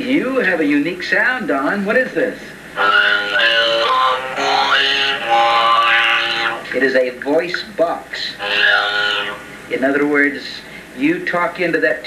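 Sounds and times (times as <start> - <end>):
violin through a talk box: 2.8 - 10.1.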